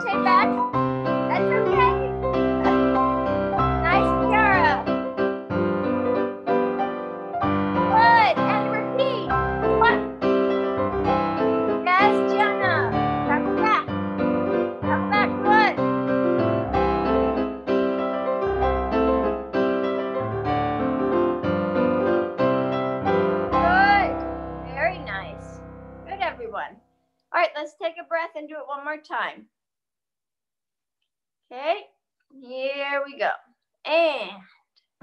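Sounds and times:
lively piano music: 0.0s - 26.6s.

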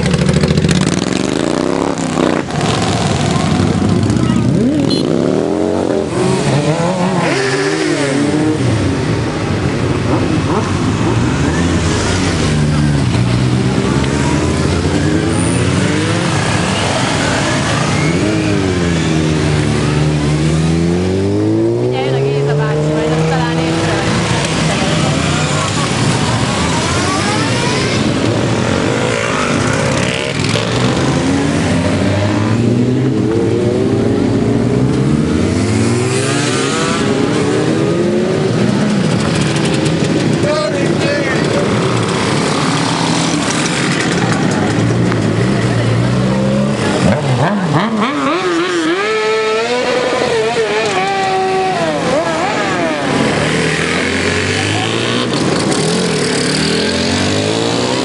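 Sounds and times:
motorcycles revving past: 0.0s - 58.0s.

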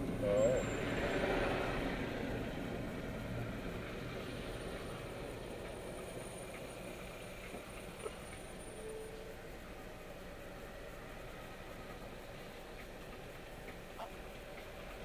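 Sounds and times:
road noise inside car: 0.0s - 15.0s.

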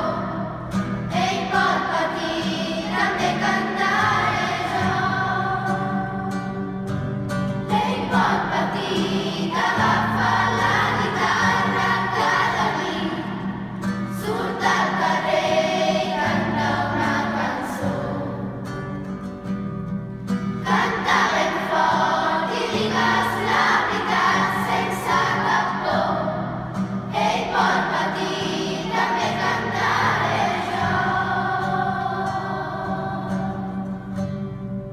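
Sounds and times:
children's choir singing: 0.0s - 6.8s, 7.6s - 19.0s, 20.5s - 34.3s.

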